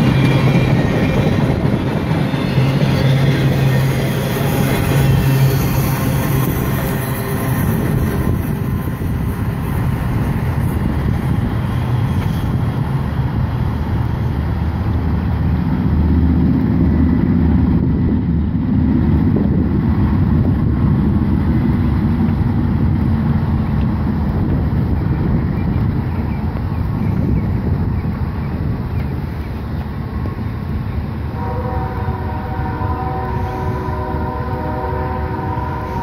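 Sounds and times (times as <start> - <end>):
train wheels rolling on rails: 0.0 - 36.0.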